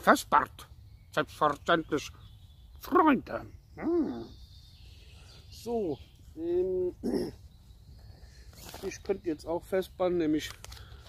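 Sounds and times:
man speaking a word: 5.5s - 7.4s.

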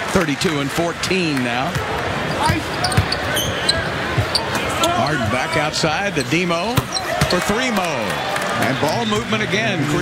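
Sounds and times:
arena crowd murmur: 0.0s - 10.0s.

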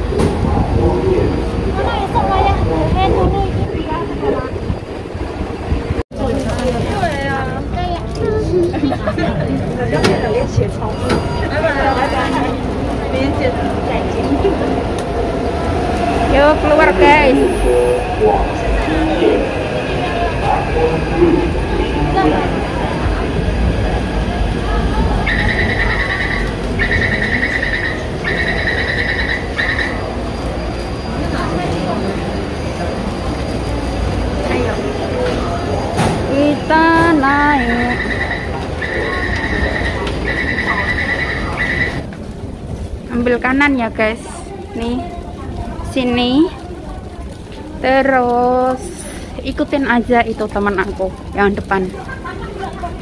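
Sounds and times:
crowd chatter: 0.0s - 53.0s
low train rumble: 0.0s - 53.0s.

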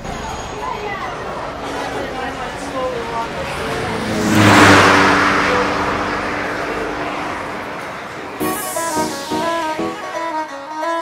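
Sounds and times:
car engine revving past: 2.4s - 10.3s.

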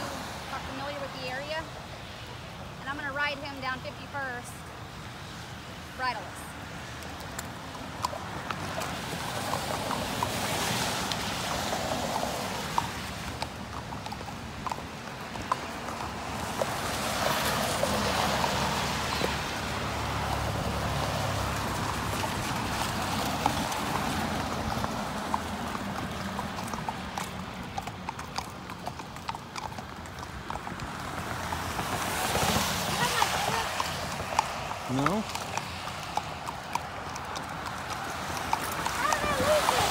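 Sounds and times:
hooves clip-clopping on street: 0.0s - 39.9s
tyres on wet road: 0.0s - 39.9s.

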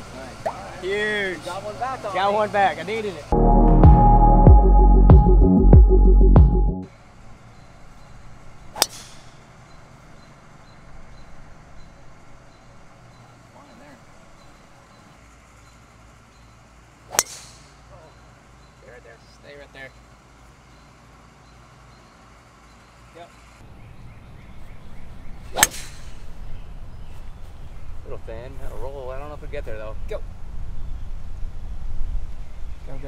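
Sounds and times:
golf ball struck with driver: 8.7s - 9.4s, 17.1s - 17.8s, 25.5s - 26.3s.

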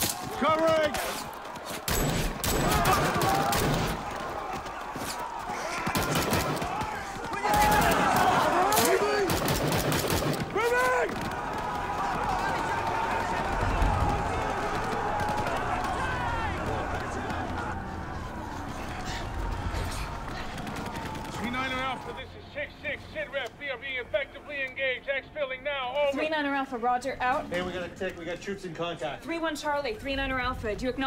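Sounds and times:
soldiers shouting: 0.0s - 22.3s
rifle and machine-gun fire: 1.0s - 4.9s, 5.6s - 17.4s, 20.3s - 21.8s.

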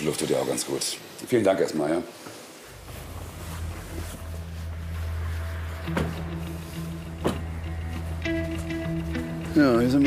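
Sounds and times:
low music drone: 2.7s - 10.0s.

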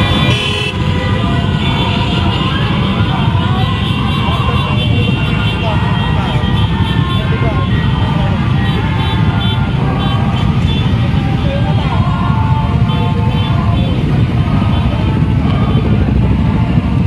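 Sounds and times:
motorcycle engines rumbling: 0.0s - 17.0s
people's voices: 0.0s - 17.0s.

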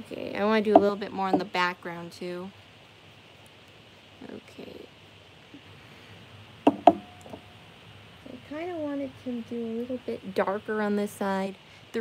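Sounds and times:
sharp knocks of hard object: 0.7s - 1.5s, 6.7s - 7.4s.

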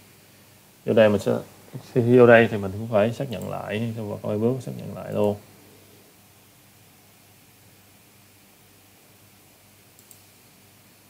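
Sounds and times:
faint steady hiss: 0.0s - 11.0s
computer mouse click: 10.0s - 10.4s.

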